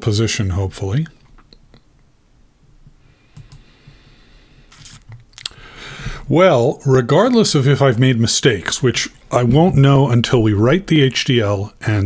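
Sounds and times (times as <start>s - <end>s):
keyboard and mouse clicks: 3.4s - 3.7s.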